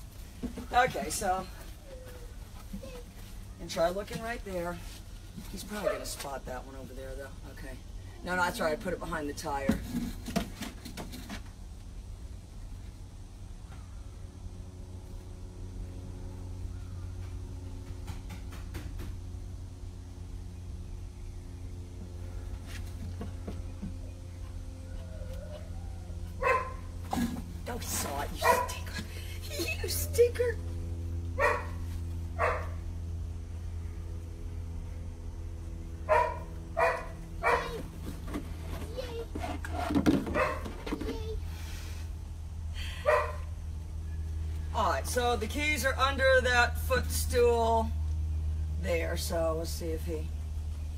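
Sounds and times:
low steady hum: 0:00.0 - 0:50.9
dog barking: 0:26.4 - 0:26.9, 0:28.4 - 0:28.8, 0:31.4 - 0:31.8, 0:32.4 - 0:32.8, 0:36.1 - 0:37.8, 0:40.3 - 0:40.7, 0:43.0 - 0:43.4.

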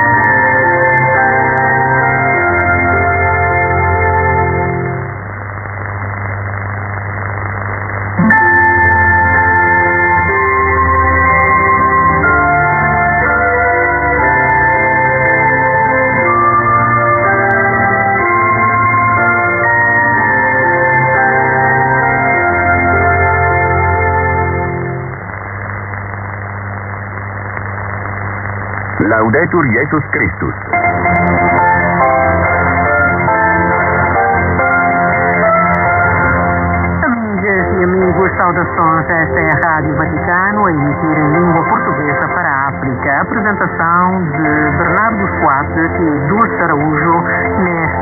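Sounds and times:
radio static hiss: 0:00.0 - 0:48.0
steady low hum: 0:02.0 - 0:14.6, 0:22.4 - 0:48.0.

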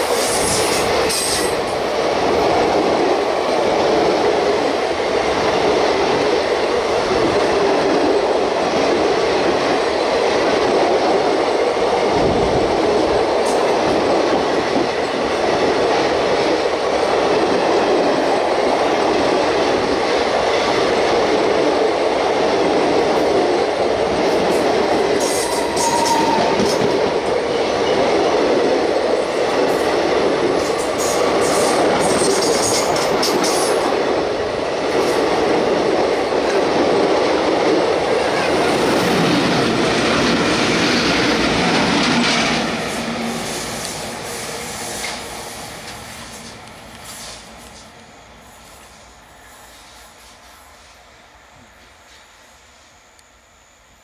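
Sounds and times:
train wheels rumbling on track: 0:00.0 - 0:52.9
high squeaks and clicks: 0:25.2 - 0:26.9.

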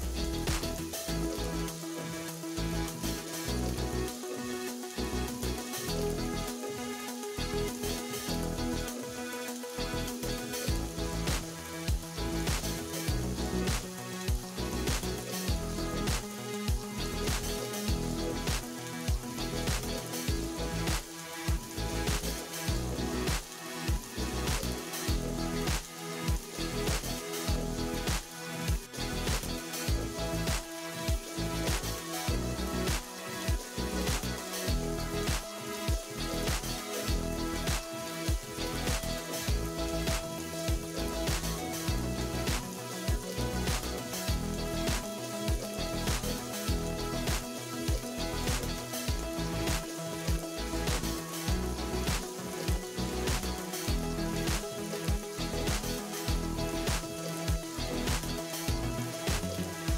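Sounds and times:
background music: 0:00.0 - 0:59.9
onions sizzling in hot oil: 0:09.6 - 0:59.9.

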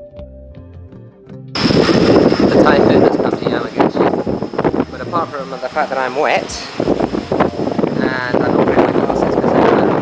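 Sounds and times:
thin high whine: 0:01.6 - 0:09.8
wind buffeting microphone: 0:01.6 - 0:10.0
man's voice: 0:04.8 - 0:06.8, 0:07.9 - 0:10.0.

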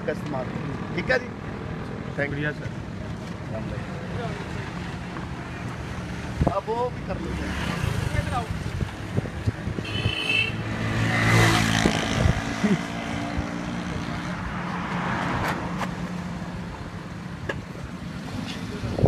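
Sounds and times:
background traffic noise: 0:00.0 - 0:19.0.

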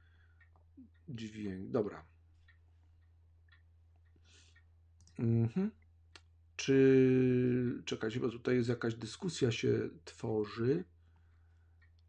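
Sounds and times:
clock ticking faintly: 0:00.0 - 0:12.0.

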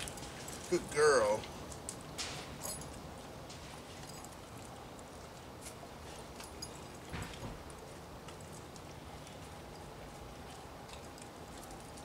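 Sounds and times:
dog chewing: 0:03.2 - 0:12.0.

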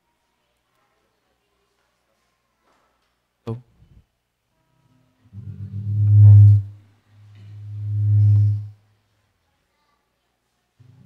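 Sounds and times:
long low held musical notes: 0:05.4 - 0:06.8, 0:07.4 - 0:08.7.

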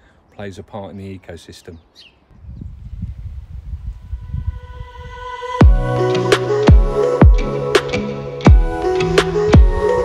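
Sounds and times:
wind rumbling on microphone: 0:02.3 - 0:05.5.

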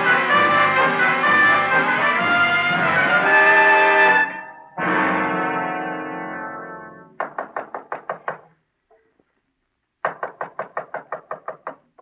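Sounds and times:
rapid knocking on door: 0:07.2 - 0:08.6, 0:10.0 - 0:12.0.

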